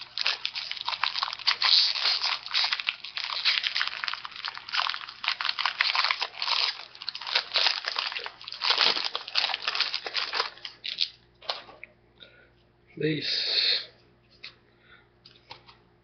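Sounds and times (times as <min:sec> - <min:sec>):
wrapper crinkling and rustling: 0:00.0 - 0:11.7.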